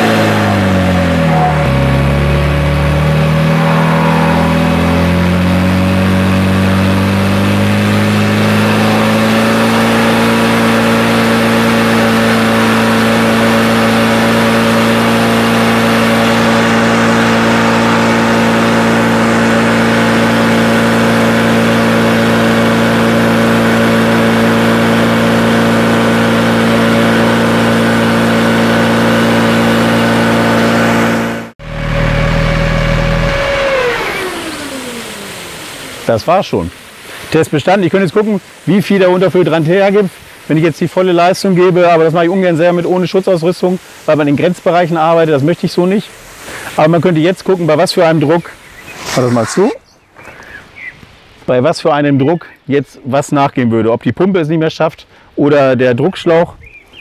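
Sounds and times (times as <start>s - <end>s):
fire pump engine running: 0.0s - 37.5s.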